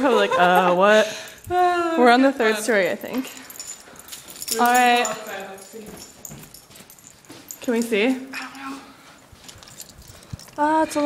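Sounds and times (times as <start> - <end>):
young woman's voice: 0.0 - 3.5, 10.6 - 11.0
rustling: 8.6 - 11.0.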